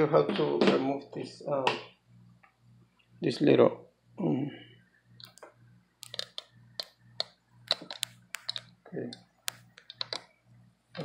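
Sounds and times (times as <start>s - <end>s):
hands clicking computer hardware: 5.2s - 10.2s.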